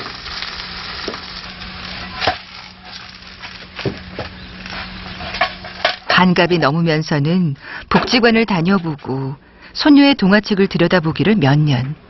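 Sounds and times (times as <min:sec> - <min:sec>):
pancake sizzling in frying pan: 0:00.0 - 0:06.1.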